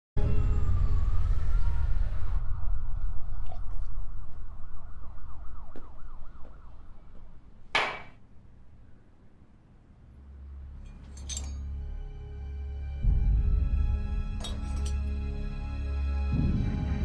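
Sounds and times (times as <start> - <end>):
siren wailing: 0.2 - 7.5
low city rumble: 0.2 - 17.0
glass tumbler clink: 10.9 - 11.6, 14.4 - 15.0.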